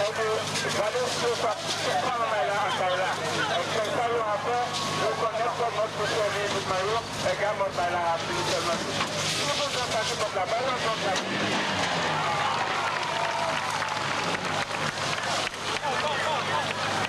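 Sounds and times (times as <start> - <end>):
fire hose spraying water: 0.0 - 17.0
low engine drone: 0.0 - 17.0
people shouting: 12.0 - 14.3, 15.2 - 17.0.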